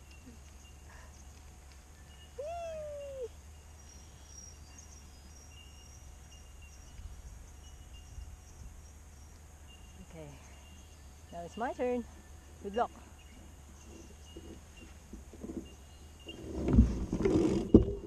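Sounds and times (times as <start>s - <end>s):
drawn-out rising and falling call: 2.4s - 3.4s.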